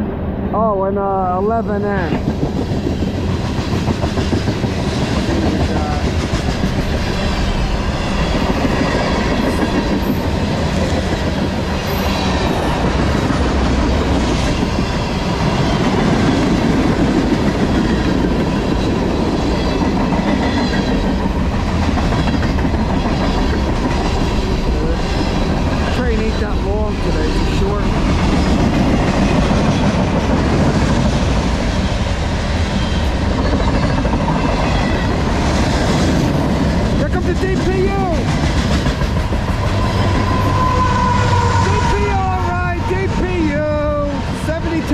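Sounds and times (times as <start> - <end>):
clickety-clack of rail joints: 2.1 - 43.6.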